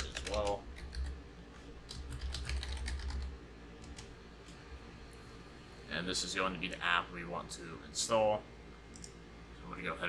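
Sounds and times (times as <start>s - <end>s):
computer keyboard typing: 0.0s - 1.2s, 1.9s - 4.1s.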